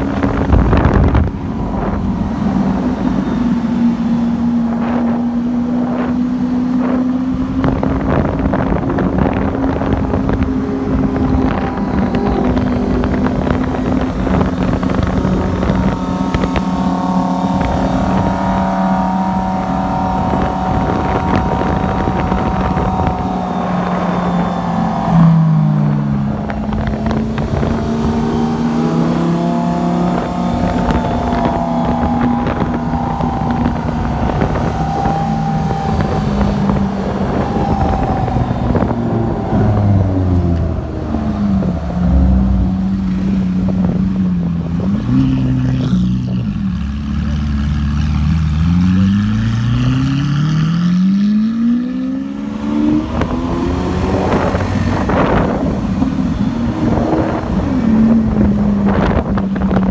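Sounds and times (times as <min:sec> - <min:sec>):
car engine running: 0:00.0 - 0:49.8, 0:52.3 - 0:59.9
wind buffeting microphone: 0:00.0 - 0:59.9.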